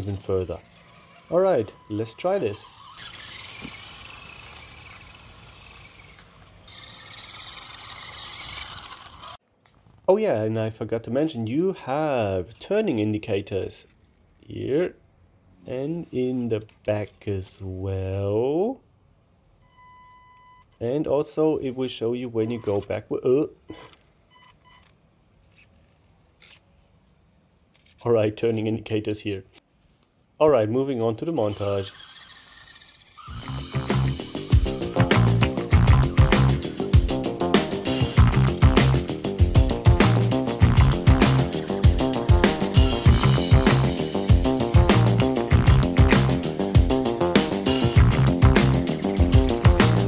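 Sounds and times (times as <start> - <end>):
small electric motor whine: 0.0 - 9.4, 31.4 - 38.2
short electronic beeps: 19.6 - 20.7.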